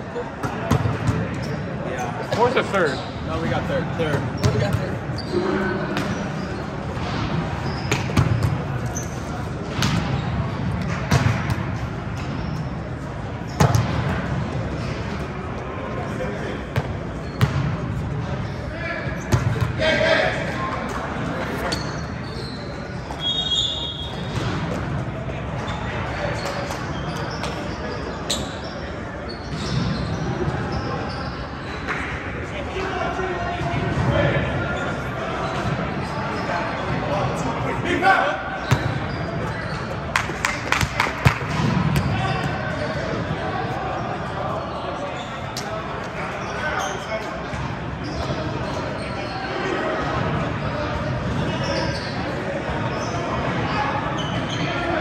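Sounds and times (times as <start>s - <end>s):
babble of voices and shouts: 0.0s - 13.6s, 14.2s - 55.0s
volleyballs hit and bouncing: 0.3s - 1.5s, 4.0s - 15.6s, 38.7s - 43.3s.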